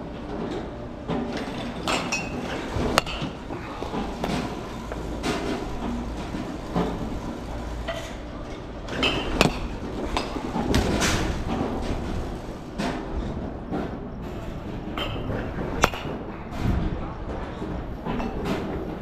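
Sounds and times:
steady low rumble: 0:02.6 - 0:19.0
balls cracking off bats: 0:08.9 - 0:11.6.

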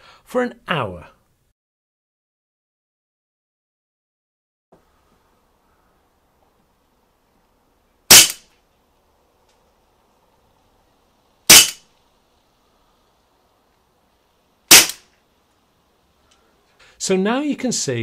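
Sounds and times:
air pistol shots: 0:08.1 - 0:08.5, 0:11.5 - 0:11.8, 0:14.7 - 0:15.1.

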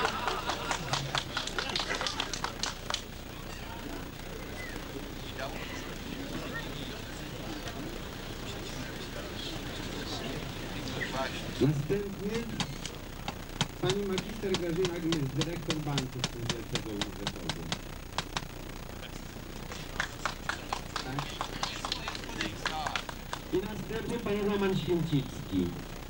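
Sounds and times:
voices talking: 0:00.0 - 0:26.0.

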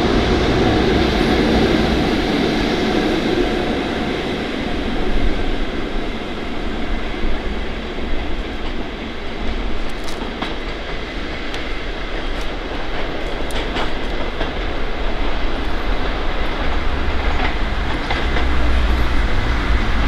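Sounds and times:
diesel train engine rumble: 0:00.0 - 0:20.0
train wheel noise: 0:00.0 - 0:20.0
wheels clicking over rail joints: 0:07.2 - 0:20.0.

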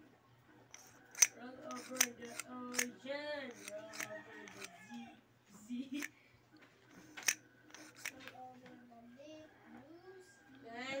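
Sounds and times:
sharp clicks of metal tube: 0:00.7 - 0:04.7, 0:07.2 - 0:08.2.

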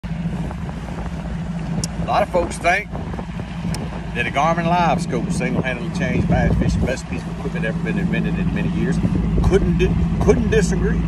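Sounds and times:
outboard motor droning: 0:00.0 - 0:11.0
wind noise on microphone: 0:00.0 - 0:11.0.

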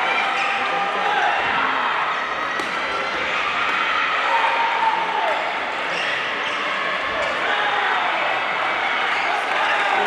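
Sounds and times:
chatter in a busy hall: 0:00.0 - 0:10.0.

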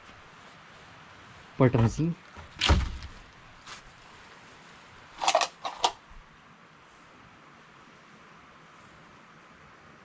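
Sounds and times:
wooden door knocking and scraping: 0:01.7 - 0:03.2.

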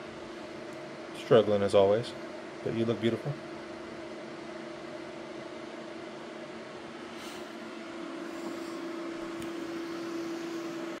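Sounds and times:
mechanical hum with pitched drone: 0:00.0 - 0:11.0.

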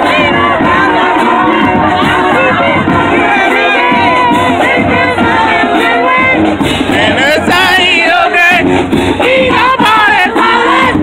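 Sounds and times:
crowd cheering and shouting: 0:00.0 - 0:11.0
marching band music: 0:00.0 - 0:11.0.

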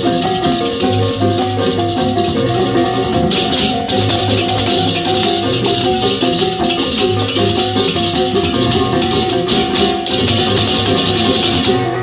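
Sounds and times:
melody of short repeated notes: 0:00.0 - 0:12.0
shaker rattling: 0:00.0 - 0:12.0.

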